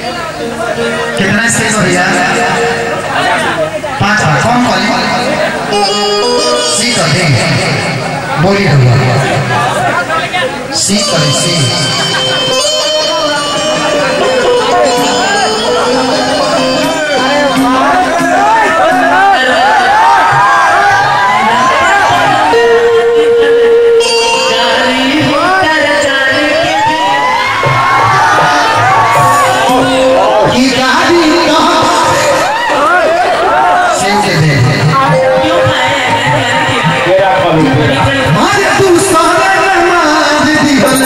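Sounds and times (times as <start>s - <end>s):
crowd cheering and shouting: 0.0s - 41.0s
loud live stage music: 0.0s - 41.0s
man speaking through pa system: 1.0s - 15.3s, 34.0s - 41.0s.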